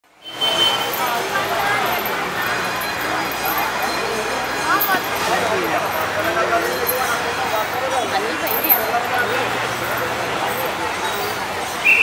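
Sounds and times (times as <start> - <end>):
street noise: 0.0 - 12.0
many distant voices talking: 0.1 - 12.0.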